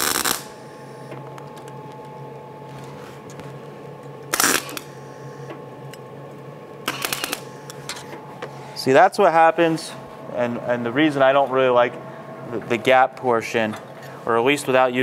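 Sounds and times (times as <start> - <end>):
welding arc crackling: 0.0 - 0.6, 4.3 - 5.0, 6.8 - 7.6
steady low hum: 0.0 - 15.0.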